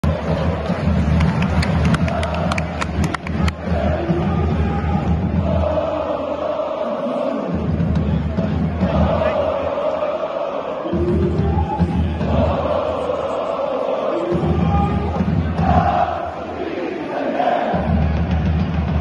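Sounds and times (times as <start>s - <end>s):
stadium crowd chanting and singing: 0.0s - 19.0s
sharp hand claps: 0.4s - 3.6s.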